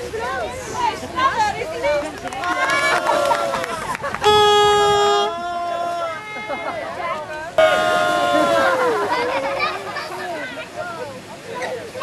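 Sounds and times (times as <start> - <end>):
people talking and calling out: 0.0 - 12.0
loud long shout: 2.5 - 6.9, 7.6 - 10.4.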